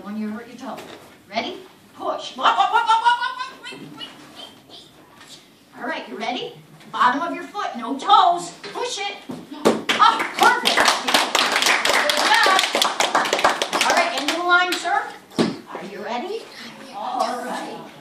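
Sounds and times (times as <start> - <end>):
children's voices: 2.8 - 5.0, 16.4 - 18.0
children clapping: 9.9 - 14.8.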